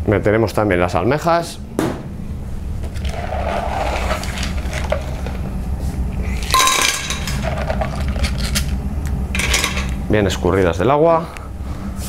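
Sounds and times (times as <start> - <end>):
low kitchen hum: 0.0 - 12.0.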